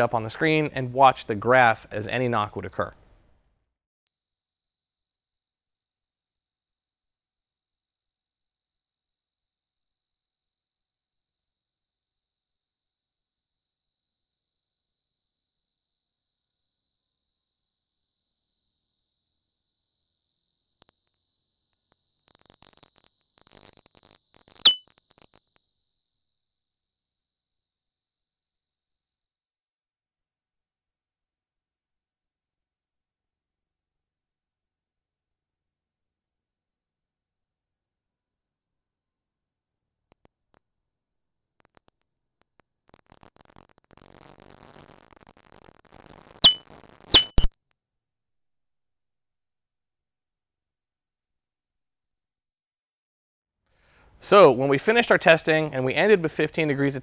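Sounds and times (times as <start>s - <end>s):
high-pitched hiss: 24.6s - 24.8s
sharp knock click: 24.6s - 24.8s, 47.2s - 47.5s.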